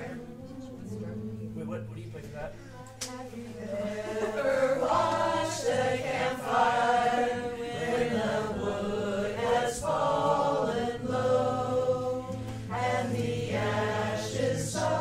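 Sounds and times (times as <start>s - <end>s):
group singing in unison: 0.0s - 1.8s, 2.6s - 15.0s.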